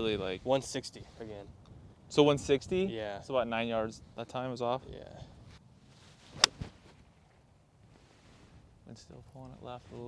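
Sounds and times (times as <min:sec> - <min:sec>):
golf club striking ball: 0:06.4 - 0:06.7.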